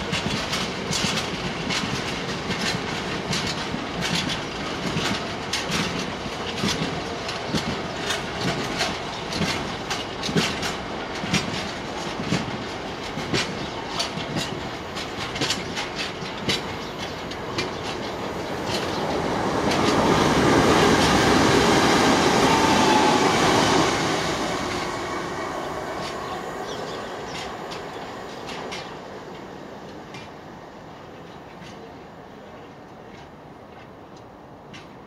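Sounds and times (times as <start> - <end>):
train wheels clicking over rail joints: 0.0 - 35.0
steady rushing noise: 14.4 - 31.0.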